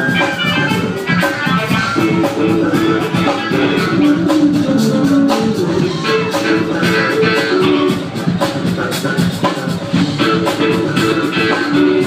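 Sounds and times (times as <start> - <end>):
drums keeping a steady beat: 0.0 - 12.0
electric guitars: 0.0 - 12.0
keyboards: 0.0 - 12.0.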